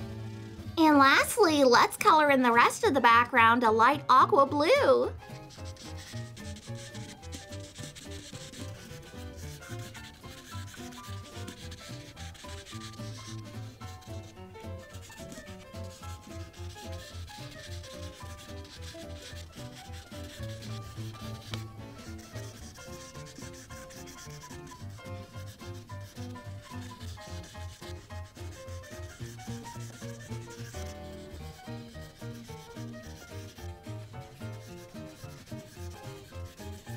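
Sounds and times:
marker scrubbing on paper: 0.4s - 36.9s.

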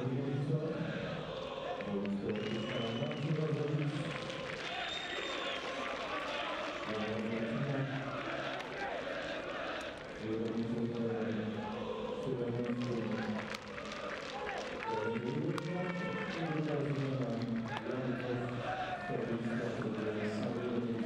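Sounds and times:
man commentating: 0.0s - 1.0s, 1.8s - 4.5s, 5.7s - 8.2s, 10.2s - 21.0s
stadium crowd noise: 0.0s - 21.0s
short high whistles: 4.7s - 5.7s.

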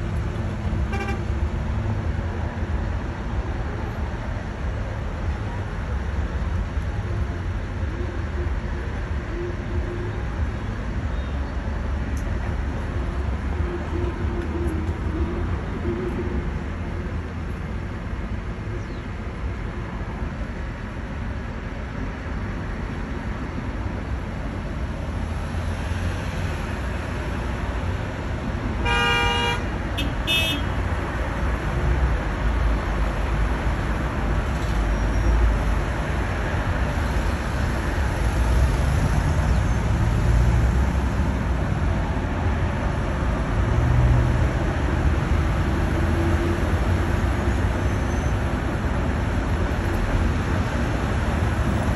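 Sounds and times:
traffic rumble: 0.0s - 51.9s
car horn honking: 0.9s - 1.3s, 28.8s - 30.7s.

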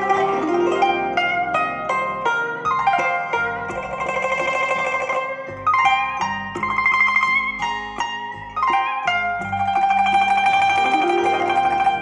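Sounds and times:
plucked-string music over speakers: 0.0s - 12.0s.

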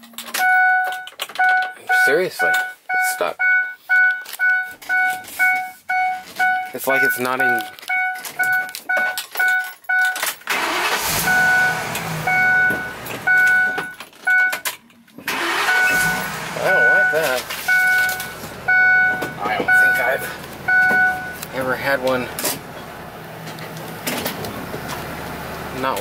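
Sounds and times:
rattling handling sounds: 0.0s - 2.8s, 3.9s - 10.6s
dashboard warning chime: 0.3s - 14.6s, 15.4s - 22.3s.

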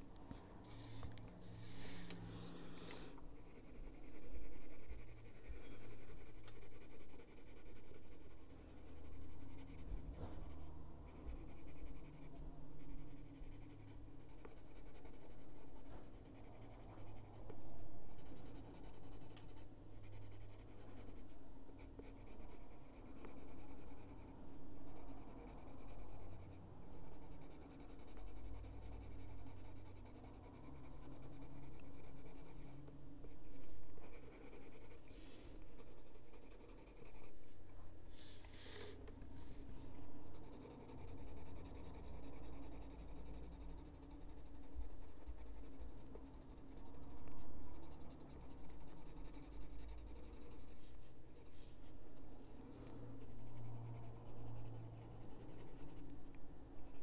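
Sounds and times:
pencil shading on paper: 0.6s - 37.4s, 38.6s - 57.0s.

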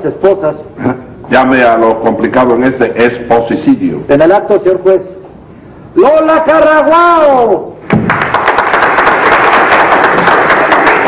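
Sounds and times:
audience applauding: 7.9s - 11.0s.

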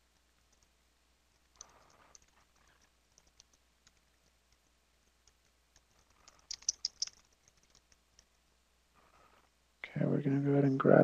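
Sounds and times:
keyboard typing clicks: 1.4s - 8.3s.

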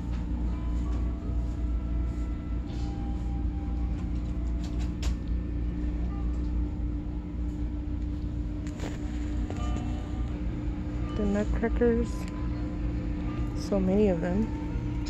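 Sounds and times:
constant hum: 0.0s - 15.0s
low rumble of store noise: 0.0s - 15.0s.

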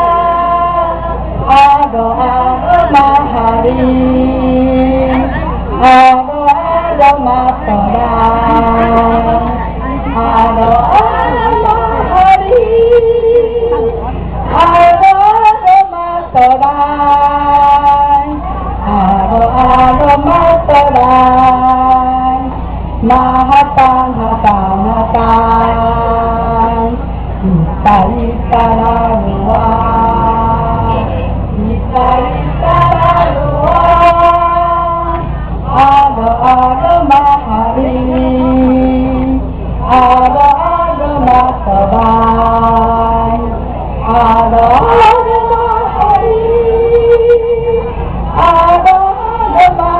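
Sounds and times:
high voices singing through loudspeaker: 0.0s - 49.9s
low electrical hum: 0.0s - 49.9s.

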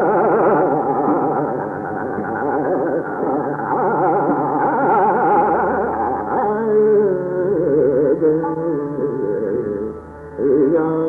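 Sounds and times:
steady held drone: 0.0s - 11.0s.

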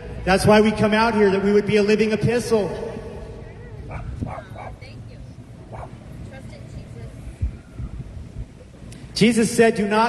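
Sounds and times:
road traffic: 0.0s - 10.0s
dog barking: 3.9s - 4.8s, 5.7s - 6.0s.

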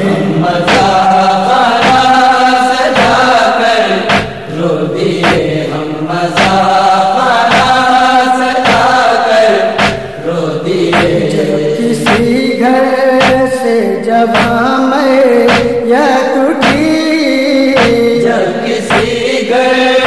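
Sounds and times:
sharp rhythmic thump: 0.0s - 20.0s
voices chanting a lament: 0.0s - 20.0s.

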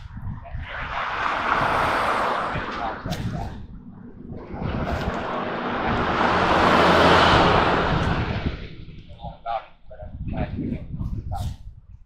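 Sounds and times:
vehicle passing: 0.6s - 9.4s.

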